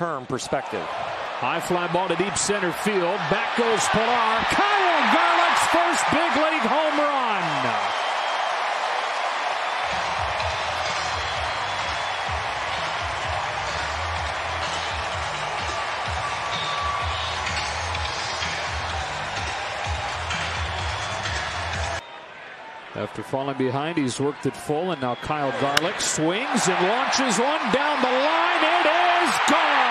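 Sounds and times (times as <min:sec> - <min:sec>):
crowd cheering: 0:00.4 - 0:29.9
crowd yells: 0:00.7 - 0:23.0, 0:25.0 - 0:29.9
stadium music with bass beat: 0:10.0 - 0:22.0.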